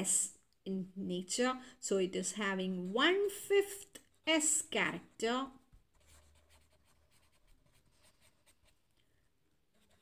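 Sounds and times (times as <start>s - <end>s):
marker scratching on paper: 2.4s - 8.9s, 9.7s - 10.0s.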